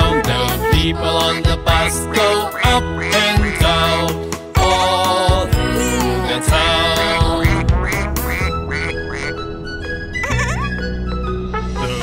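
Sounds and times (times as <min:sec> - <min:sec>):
quack-like calls: 0:00.0 - 0:05.2, 0:06.5 - 0:09.4
children's song music: 0:00.0 - 0:12.0.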